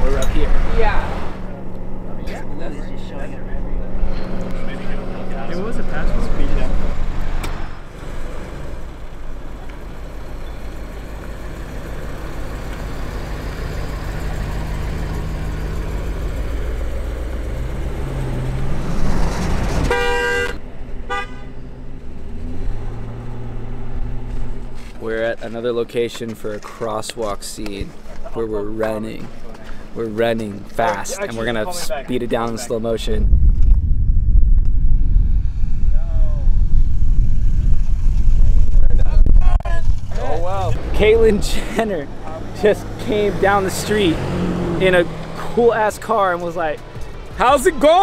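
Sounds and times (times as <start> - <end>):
cars driving on road: 0.0 - 48.0
car horn honking: 19.8 - 21.7.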